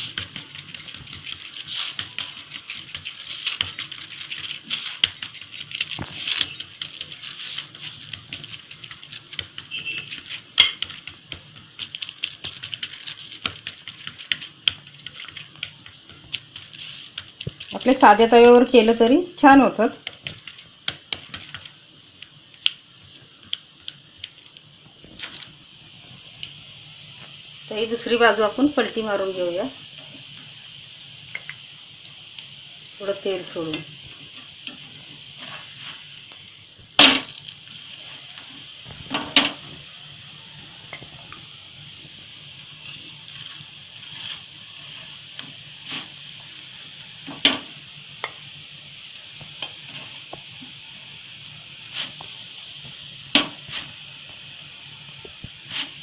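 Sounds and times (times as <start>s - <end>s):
fingers patting dough: 0.0s - 17.8s
plastic sheet crinkling: 0.0s - 18.3s
oil sizzling under frying flatbread: 0.0s - 56.0s.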